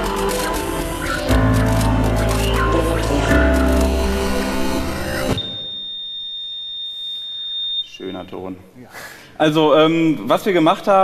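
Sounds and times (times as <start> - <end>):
music: 0.0 - 5.6
high-pitched electronic beep: 1.0 - 8.0.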